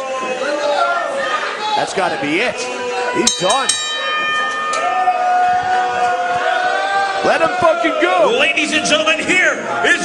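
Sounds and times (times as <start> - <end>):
crowd: 0.0 - 10.0.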